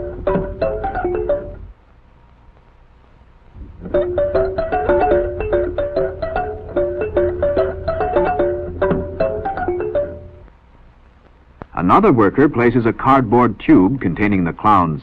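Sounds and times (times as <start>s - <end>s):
music box tune: 0.0s - 1.7s, 3.9s - 10.4s.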